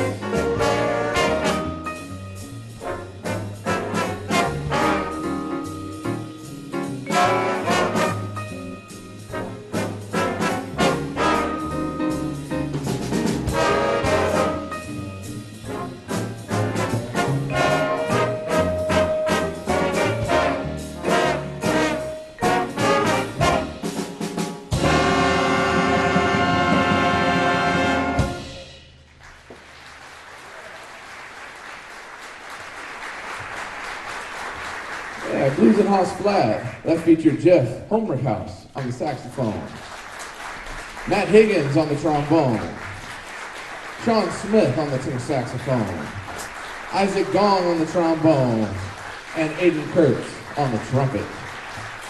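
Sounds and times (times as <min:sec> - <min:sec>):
jazz big band playing: 0:00.0 - 0:52.0
audience applause: 0:29.1 - 0:37.1, 0:39.4 - 0:52.0.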